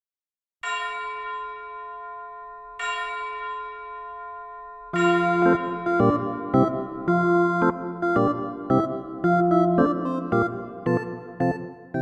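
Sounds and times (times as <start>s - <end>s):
bell-like chime ringing: 0.6s - 7.2s.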